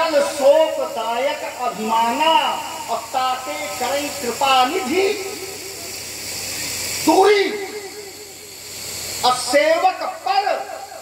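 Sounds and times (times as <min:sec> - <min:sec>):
man's echoing amplified voice: 0:00.0 - 0:05.7, 0:07.0 - 0:08.2, 0:09.2 - 0:11.0
sound system hiss: 0:00.0 - 0:11.0.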